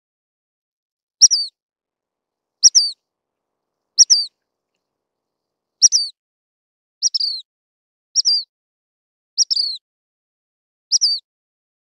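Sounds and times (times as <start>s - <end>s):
flycatcher two-part call: 2.6s - 3.0s, 4.0s - 4.4s.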